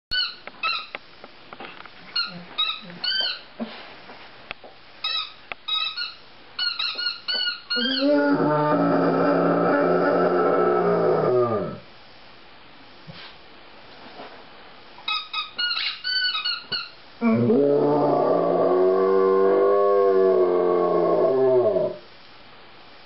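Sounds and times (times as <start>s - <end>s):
dog whining: 5.8s - 11.8s, 15.4s - 19.4s.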